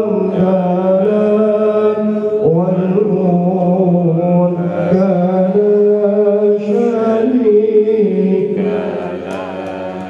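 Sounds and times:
person chanting long sung notes: 0:00.0 - 0:10.0.

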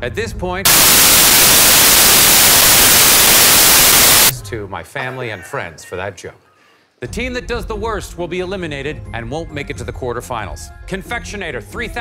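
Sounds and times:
white-noise hiss: 0:00.7 - 0:04.4.

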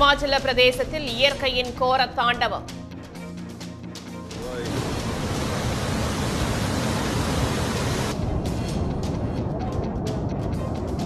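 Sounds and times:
floodwater rushing: 0:04.4 - 0:08.1
deep rumble of water: 0:04.4 - 0:09.7.

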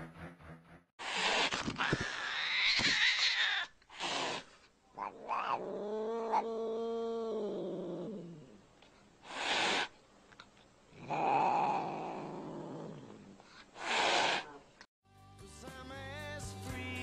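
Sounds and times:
cat hissing: 0:01.0 - 0:06.5, 0:09.2 - 0:10.0, 0:13.6 - 0:14.8
cat yowling: 0:01.8 - 0:04.4, 0:05.0 - 0:07.5.

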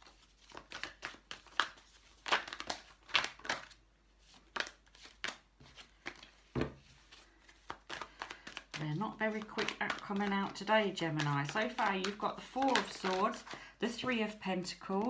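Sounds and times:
cards being shuffled: 0:00.0 - 0:14.2.

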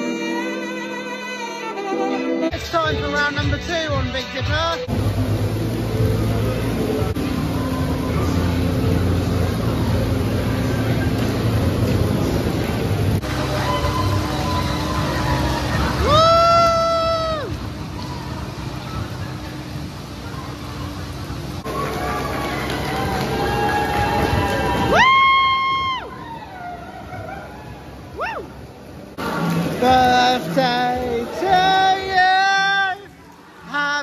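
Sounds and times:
crowd chatter: 0:04.8 - 0:25.0, 0:25.7 - 0:34.0
roller coaster train rumbling: 0:05.0 - 0:28.2.

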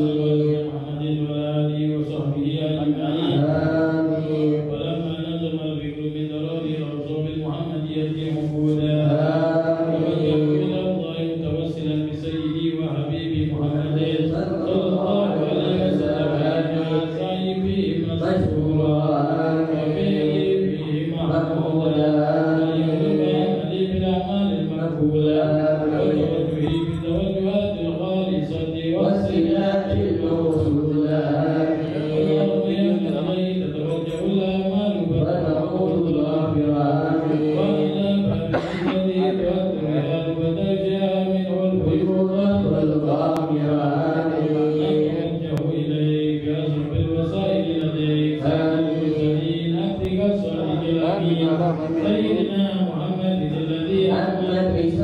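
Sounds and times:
man leading chant through microphone: 0:00.0 - 0:55.0
men chanting together: 0:00.0 - 0:55.0.

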